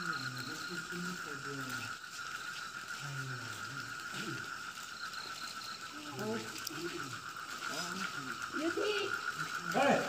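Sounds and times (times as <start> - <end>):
frogs calling in chorus: 0.0 - 10.0.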